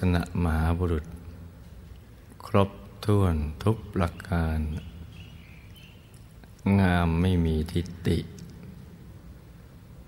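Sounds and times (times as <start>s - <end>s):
man speaking: 0.0s - 1.1s, 2.4s - 4.9s, 6.6s - 8.5s
faint background noise: 0.0s - 10.0s.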